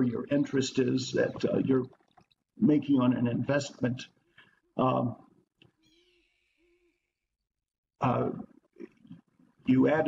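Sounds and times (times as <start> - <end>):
man's voice: 0.0 - 1.9, 2.6 - 4.1, 4.8 - 5.2, 8.0 - 8.4, 9.7 - 10.0.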